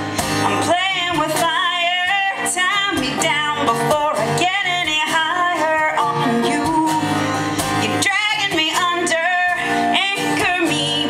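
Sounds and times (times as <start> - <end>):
acoustic guitar strumming: 0.0 - 11.0
woman singing: 0.0 - 11.0.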